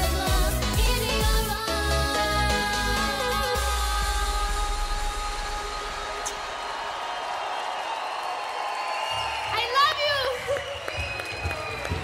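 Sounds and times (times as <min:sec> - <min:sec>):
pop song synth chord: 0:00.0 - 0:06.3
audience cheering and clapping: 0:05.0 - 0:12.0.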